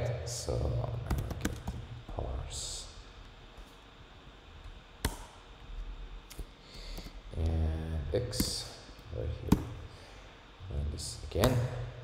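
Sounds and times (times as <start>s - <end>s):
faint low room hum: 0.0s - 12.0s
computer keyboard keystroke: 1.1s - 1.8s.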